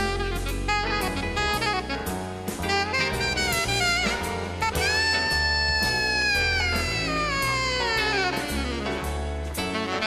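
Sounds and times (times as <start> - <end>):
alto saxophone long bending note: 0.0 - 10.0
bass notes: 0.0 - 10.0.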